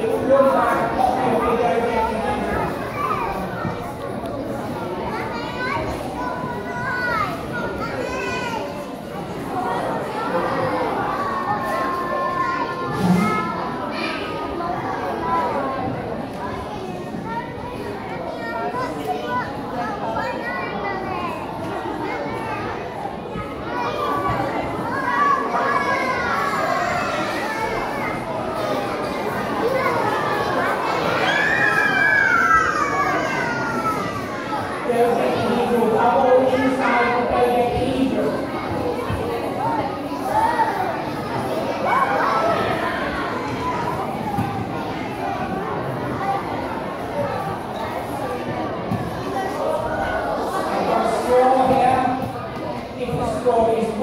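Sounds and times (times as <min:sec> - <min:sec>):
children chattering in a hall: 0:00.0 - 0:54.0.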